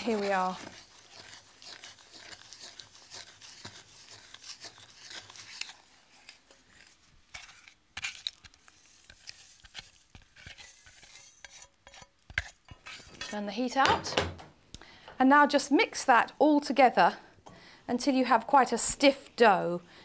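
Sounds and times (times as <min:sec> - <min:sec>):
wooden spoon scraping saucepan: 0:00.0 - 0:14.2.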